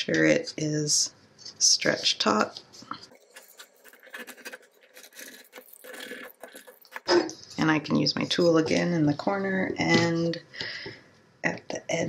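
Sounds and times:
fingers rustling on screen mesh: 1.4s - 8.9s.

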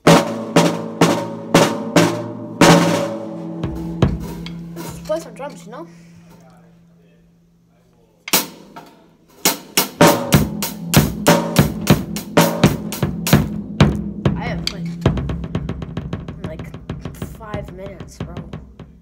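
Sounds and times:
acoustic drum kit: 0.0s - 7.0s, 8.3s - 19.0s.

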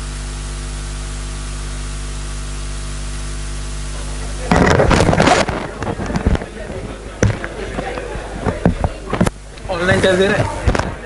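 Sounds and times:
electrical mains hum: 0.0s - 11.0s
rush of rustling noise: 4.5s - 11.0s
scattered knocks and clicks: 4.5s - 11.0s.

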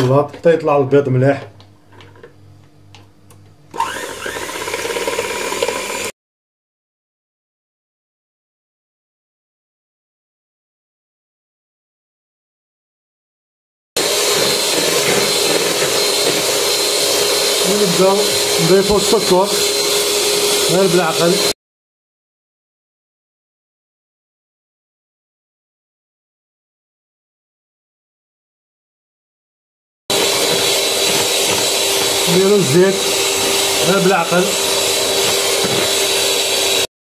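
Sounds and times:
electric hand mixer whining: 3.7s - 6.1s, 14.0s - 21.6s, 30.1s - 36.9s
beaters whisking in a bowl: 3.8s - 6.1s, 14.0s - 21.5s, 30.1s - 36.9s.

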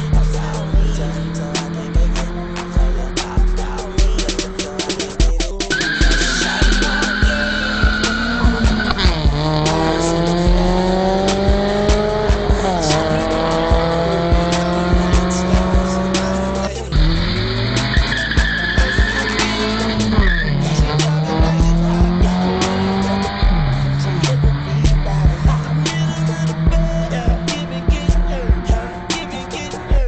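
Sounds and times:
car engine revving: 0.0s - 30.0s
tyres squealing: 0.0s - 30.0s.

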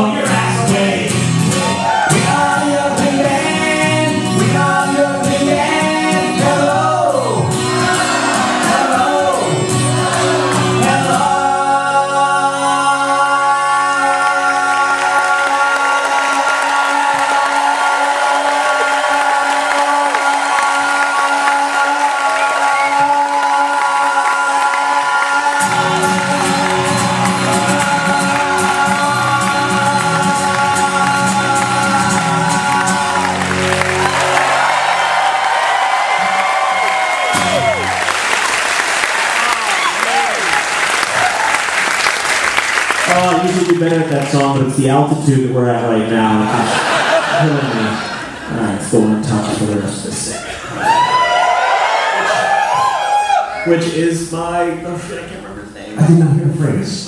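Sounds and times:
men singing: 0.0s - 34.1s
acoustic guitar strumming: 0.0s - 38.3s
audience applause and cheering: 0.1s - 11.6s, 13.3s - 45.1s, 46.2s - 54.5s.

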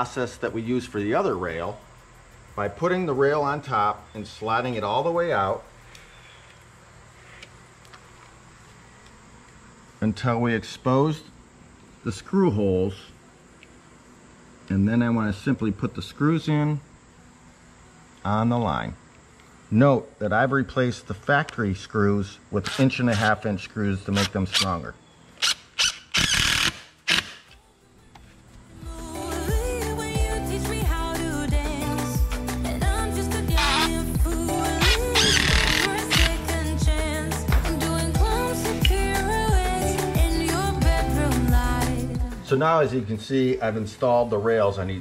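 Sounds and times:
impact driver driving screw: 25.4s - 27.6s, 34.8s - 36.4s.

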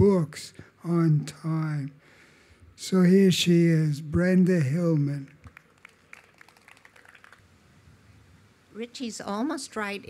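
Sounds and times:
faint scattered hand claps: 4.9s - 7.4s.

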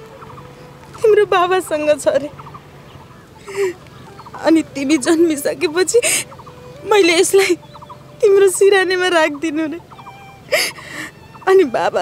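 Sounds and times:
woman speaking in trembling tones: 0.9s - 2.3s, 3.5s - 12.0s.

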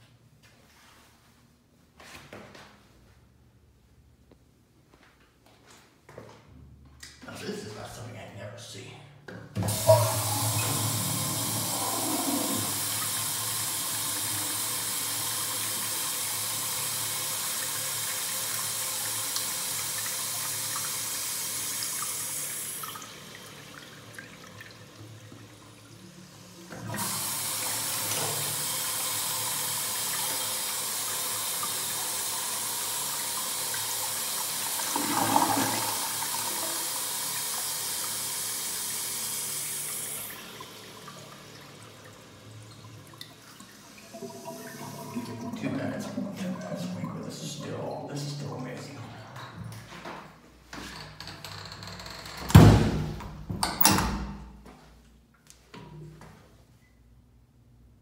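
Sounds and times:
urinal flushing water rush: 9.6s - 49.7s
stall door banging: 52.4s - 54.4s.

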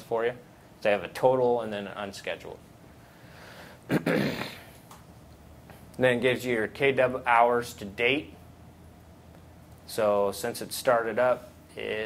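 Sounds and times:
man coughing: 3.9s - 4.7s.

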